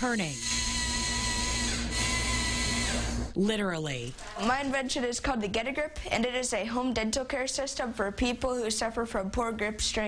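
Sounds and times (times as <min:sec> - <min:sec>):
toy motor whining with gear rattle: 0:00.0 - 0:03.2.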